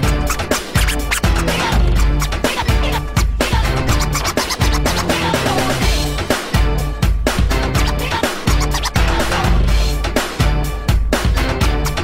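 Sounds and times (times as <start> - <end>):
record scratches: 0.0 - 5.7, 7.8 - 9.4
electro dance music with heavy bass: 0.0 - 6.1, 7.6 - 9.7.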